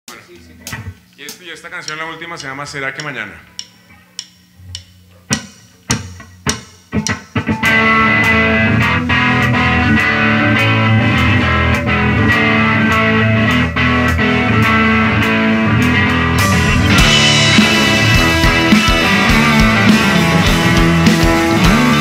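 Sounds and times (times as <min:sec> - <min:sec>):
sharp count-in clicks: 0:01.1 - 0:07.4
rock band playing: 0:05.3 - 0:22.0.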